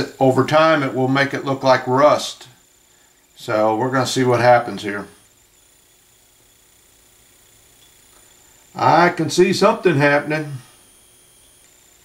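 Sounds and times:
faint steady recording hiss: 0:00.0 - 0:12.0.

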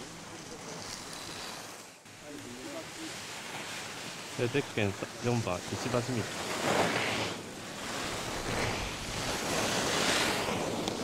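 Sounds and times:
skis carving on snow: 0:00.0 - 0:11.0.

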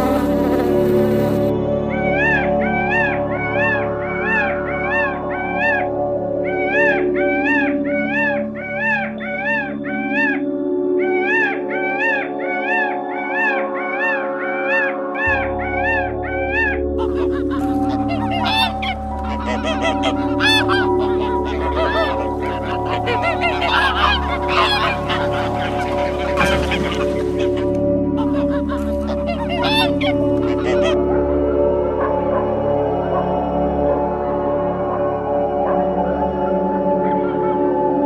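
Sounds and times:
background music with chords: 0:00.0 - 0:38.0
geese honking: 0:15.7 - 0:31.0
rapid chirping calls: 0:17.0 - 0:31.0.

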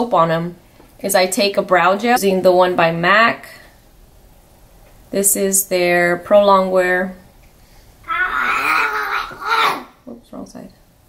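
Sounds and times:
wavering vocal cry: 0:08.1 - 0:10.0.

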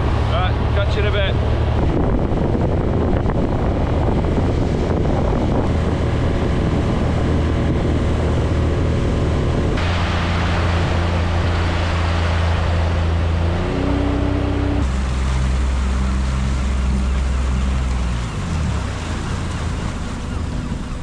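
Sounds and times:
outboard motor running: 0:00.0 - 0:21.0
water rushing past hull: 0:00.0 - 0:21.0
wind on microphone: 0:00.0 - 0:21.0.

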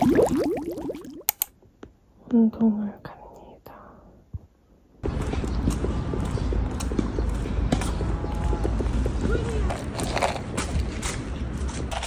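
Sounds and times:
footsteps on paved sidewalk: 0:05.0 - 0:12.0.

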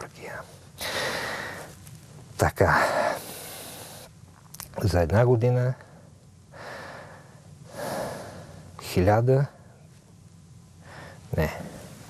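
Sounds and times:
man breathing close to microphone: 0:00.5 - 0:01.8, 0:02.8 - 0:04.1, 0:06.0 - 0:08.7, 0:10.8 - 0:12.0.

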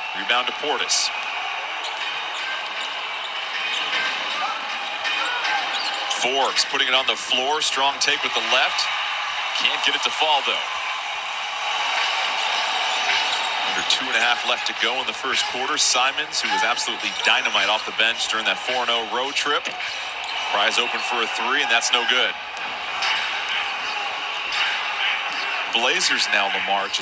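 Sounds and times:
arena ambience: 0:00.0 - 0:27.0.

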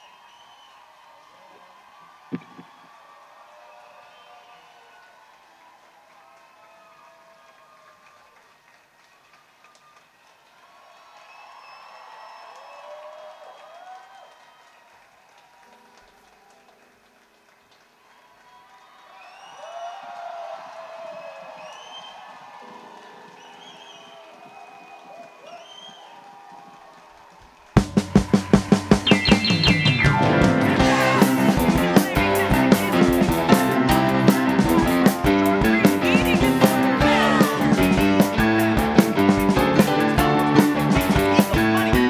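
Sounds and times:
band with drums: 0:27.8 - 0:42.0
faint voices: 0:28.4 - 0:42.0
soft keyboard chord: 0:29.4 - 0:42.0.

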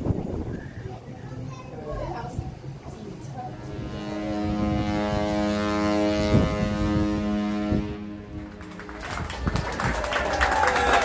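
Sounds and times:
ship's horn blast: 0:03.4 - 0:09.0.

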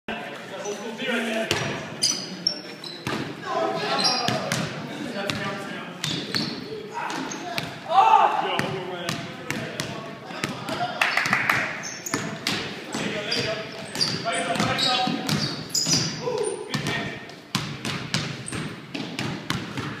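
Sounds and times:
players calling out: 0:02.0 - 0:17.2
basketball bouncing on wooden floor: 0:12.1 - 0:20.0.

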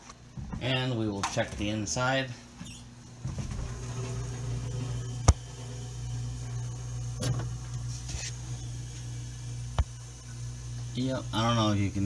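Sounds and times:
refrigerator compressor humming: 0:00.0 - 0:12.0.

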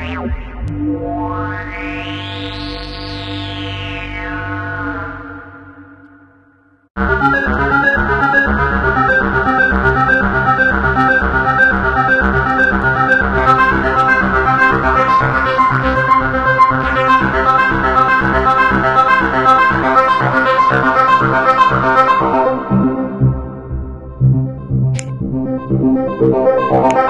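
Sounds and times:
synthesizer arpeggio of rapid notes: 0:07.0 - 0:27.0.

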